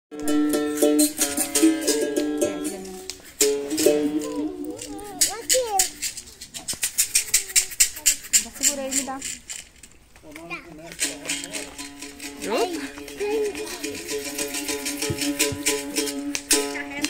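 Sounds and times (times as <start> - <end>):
berimbau notes ringing: 0.1 - 6.2
caxixi rattling: 0.9 - 16.8
voices: 3.8 - 9.5, 10.2 - 17.0.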